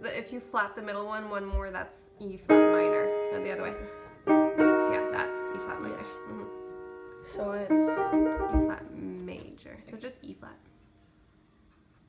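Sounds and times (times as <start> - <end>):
piano chords: 0.0 - 9.4.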